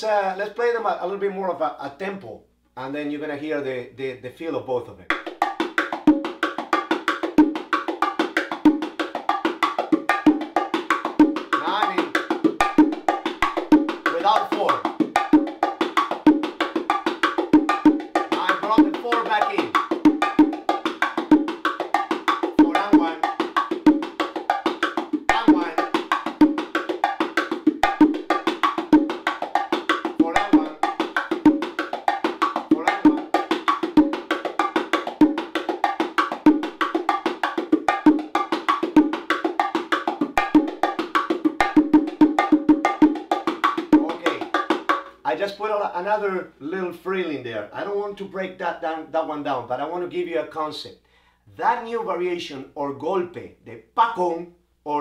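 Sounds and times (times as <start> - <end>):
bongo drums played by hand: 5.1 - 45.2.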